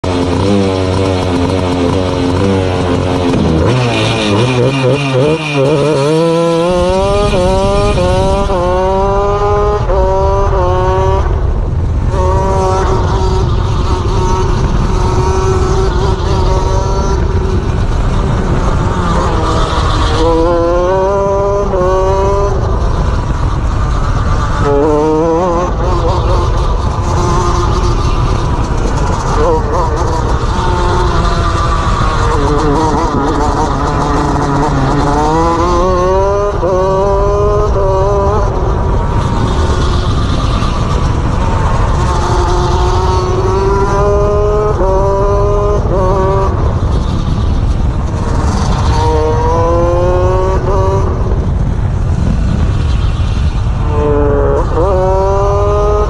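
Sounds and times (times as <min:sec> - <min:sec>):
go-kart engine accelerating: 0:00.0 - 0:56.0
wind noise on microphone: 0:00.0 - 0:56.0.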